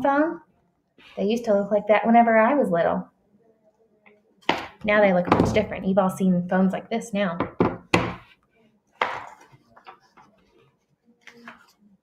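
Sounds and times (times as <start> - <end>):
sharp knock on tabletop: 7.4 - 8.2
book page turning: 9.2 - 11.8.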